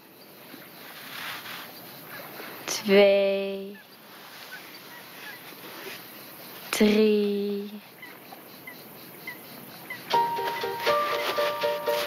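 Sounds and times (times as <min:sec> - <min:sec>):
faint outdoor ambience: 0:00.0 - 0:12.0
small bird chirping: 0:03.6 - 0:06.8, 0:07.4 - 0:11.1.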